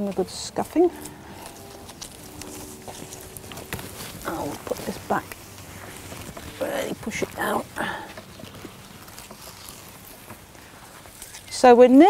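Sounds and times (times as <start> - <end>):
roots and soil rustling: 0.0 - 12.0.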